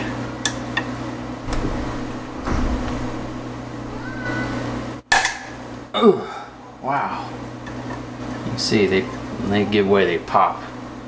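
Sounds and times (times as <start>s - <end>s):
brief squeak: 3.9s - 4.6s.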